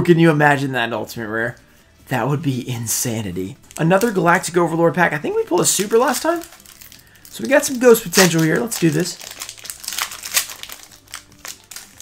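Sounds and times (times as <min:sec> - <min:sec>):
foil wrapper crinkling: 0:05.3 - 0:12.0.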